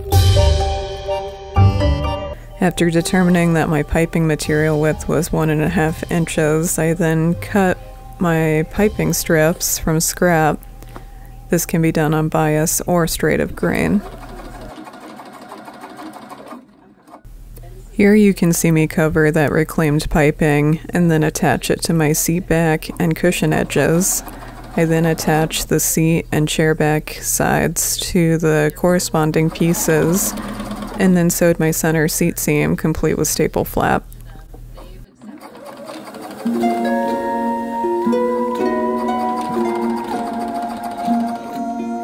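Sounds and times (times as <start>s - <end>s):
sewing machine running: 13.2s - 17.3s, 22.6s - 26.2s, 29.1s - 31.8s, 35.2s - 37.0s, 38.7s - 41.8s.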